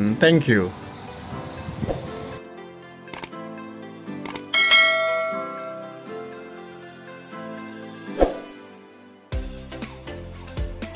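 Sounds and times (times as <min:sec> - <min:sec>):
light background music: 0:00.0 - 0:10.9
mouse click sounds: 0:03.1 - 0:03.3, 0:04.2 - 0:04.5
notification bell chime: 0:04.6 - 0:06.2.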